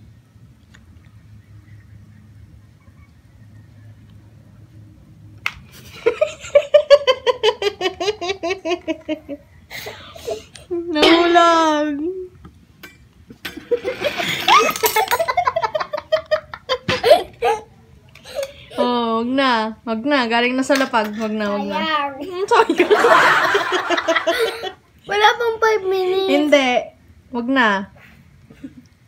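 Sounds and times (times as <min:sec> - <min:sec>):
person giggling: 0:14.2 - 0:17.7, 0:23.9 - 0:24.8.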